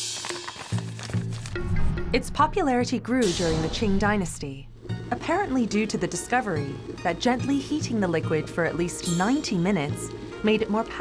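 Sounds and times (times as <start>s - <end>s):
plucked background music: 0.0s - 11.0s.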